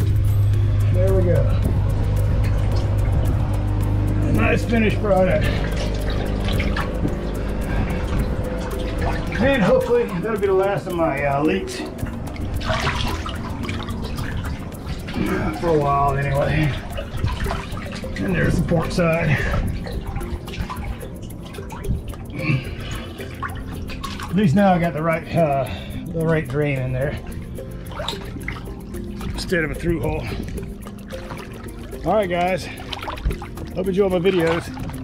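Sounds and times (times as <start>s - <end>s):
background music: 0.0s - 35.0s
water sloshing around hull: 0.0s - 35.0s.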